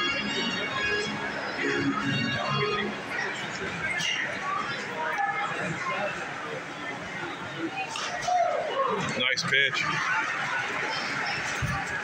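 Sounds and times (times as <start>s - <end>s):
ballpark organ music: 0.0s - 4.0s
spectators chatting: 0.0s - 12.0s.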